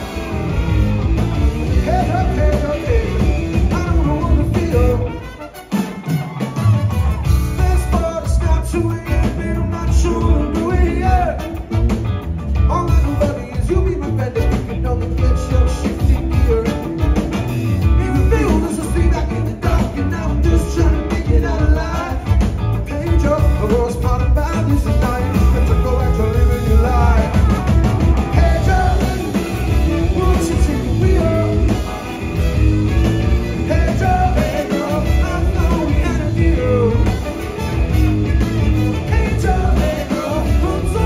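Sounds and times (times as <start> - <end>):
horn section holding notes: 0.0 - 7.9, 24.8 - 41.0
bass: 0.0 - 41.0
drum kit: 0.0 - 41.0
electric guitars: 0.0 - 41.0
live band playing: 0.0 - 41.0
lead singer singing: 1.7 - 5.2, 7.5 - 11.6, 17.9 - 32.1, 33.4 - 37.6, 38.9 - 41.0.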